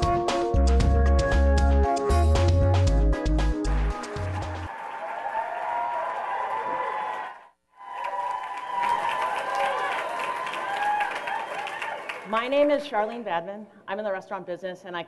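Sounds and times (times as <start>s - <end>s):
intro music with heavy bass beat: 0.0s - 4.7s
audience applause and cheering: 3.4s - 12.3s.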